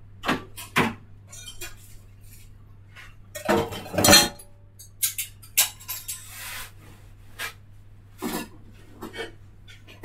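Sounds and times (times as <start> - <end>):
dishes and cutlery clattering: 0.2 - 2.0, 3.3 - 6.3.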